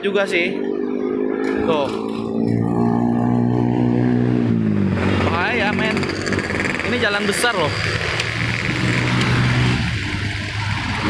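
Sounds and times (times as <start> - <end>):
vehicle engine passing by: 0.3 - 11.0.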